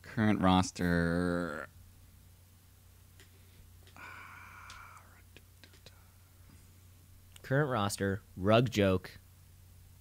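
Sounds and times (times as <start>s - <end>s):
man saying uh: 0.0s - 1.7s
faint clicks: 3.2s - 6.0s.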